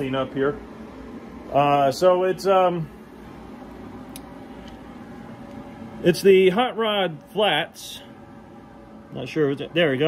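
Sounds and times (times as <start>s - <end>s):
fan hum: 0.0s - 10.0s.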